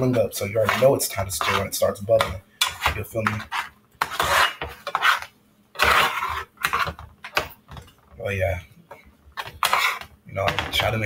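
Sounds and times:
utensil scraping a skillet: 0:00.0 - 0:07.6, 0:09.4 - 0:10.9.

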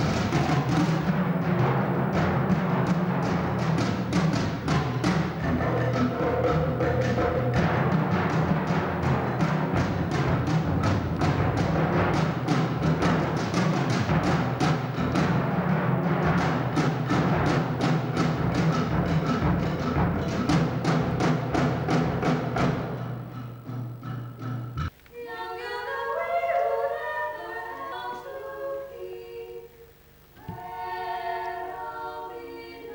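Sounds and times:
drums played with mallets: 0:00.0 - 0:24.9.

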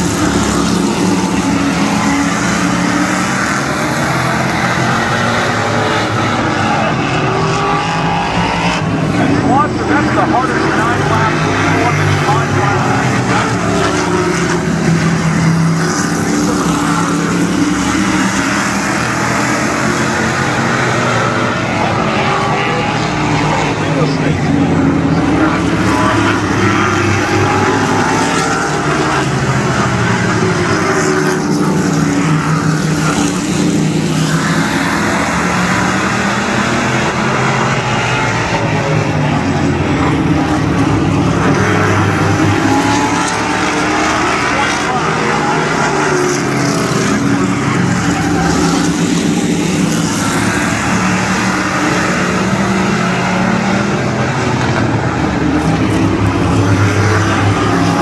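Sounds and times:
race car engines: 0:00.0 - 0:58.0.

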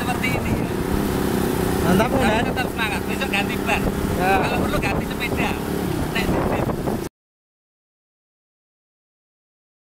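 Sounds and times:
people talking: 0:01.8 - 0:05.6, 0:06.2 - 0:06.8.

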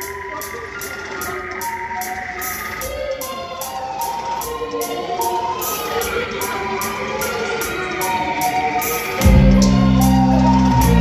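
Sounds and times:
high ticking beat: 0:00.0 - 0:11.0
synth keyboard notes bending: 0:00.0 - 0:11.0
bass guitar: 0:09.2 - 0:11.0.

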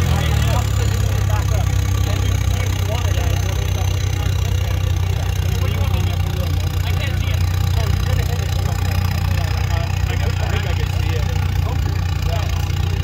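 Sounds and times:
engine idling: 0:00.0 - 0:13.0
faint voices: 0:00.0 - 0:13.0.

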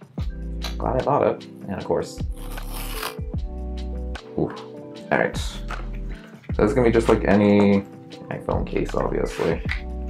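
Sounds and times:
background music: 0:00.0 - 0:10.0
cardboard box tab tearing: 0:02.4 - 0:03.2.

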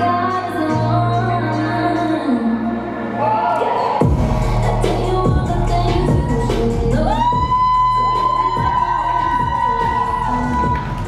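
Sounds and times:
dance pop track: 0:00.0 - 0:11.0.

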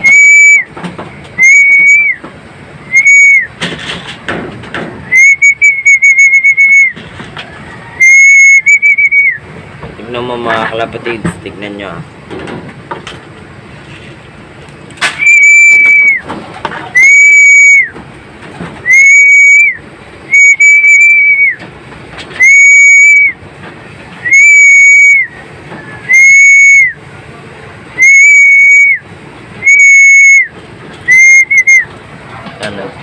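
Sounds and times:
hand whistle blasts: 0:00.0 - 0:00.7, 0:01.4 - 0:02.3, 0:02.9 - 0:03.6, 0:05.0 - 0:07.0, 0:08.0 - 0:09.4, 0:15.0 - 0:16.3, 0:17.0 - 0:18.0, 0:18.8 - 0:21.6, 0:22.4 - 0:23.4, 0:24.2 - 0:25.4, 0:26.0 - 0:27.0, 0:28.0 - 0:29.0, 0:29.6 - 0:30.5, 0:31.1 - 0:31.9.

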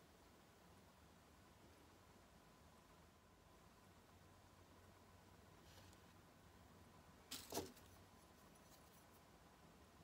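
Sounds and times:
handling noise: 0:07.3 - 0:09.2.

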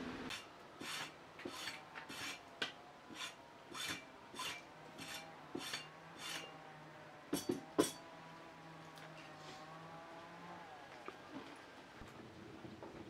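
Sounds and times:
metal scraping on steel barrel: 0:00.3 - 0:02.5, 0:03.1 - 0:06.6.

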